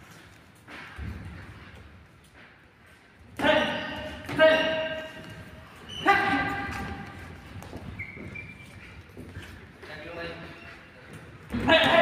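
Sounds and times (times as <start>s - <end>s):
man shouting with echo: 3.4s - 5.2s, 6.0s - 7.0s, 11.6s - 12.0s.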